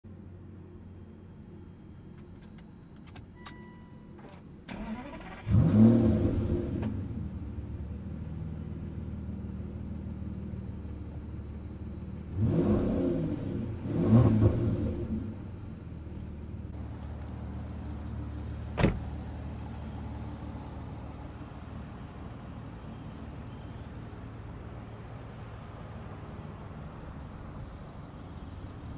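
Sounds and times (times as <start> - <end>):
car engine starting and idling: 0.2 - 28.9.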